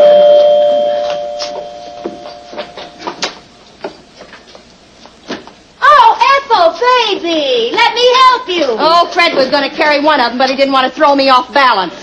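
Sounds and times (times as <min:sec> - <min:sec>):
two-note door chime: 0:00.0 - 0:02.6.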